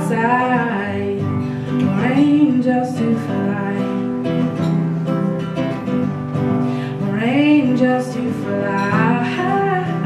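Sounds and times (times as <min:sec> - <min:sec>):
acoustic guitar strummed: 0:00.0 - 0:10.0.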